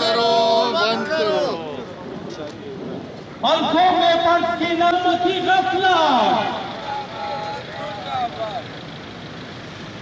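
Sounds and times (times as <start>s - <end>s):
faint crowd voices: 0.0s - 9.4s
road traffic rush: 0.0s - 10.0s.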